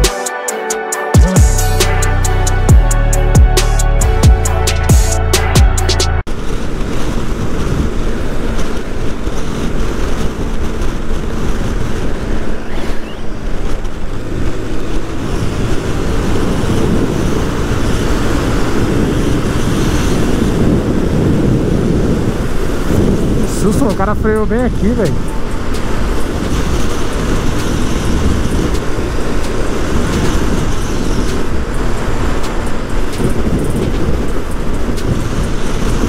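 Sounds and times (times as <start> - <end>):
music with drum beat: 0.0 - 6.2
motorcycle engine: 1.4 - 36.0
wind on microphone: 6.2 - 36.0.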